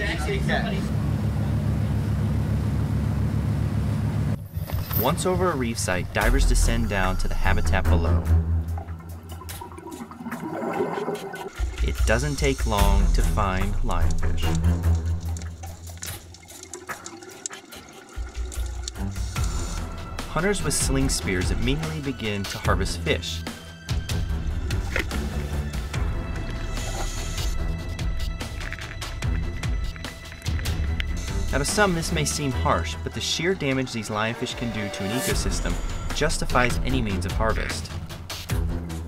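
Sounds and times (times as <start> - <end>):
boat engine droning: 0.0 - 38.4
underwater water noise: 8.6 - 20.3, 24.5 - 31.5
rushing water hiss: 16.5 - 20.1.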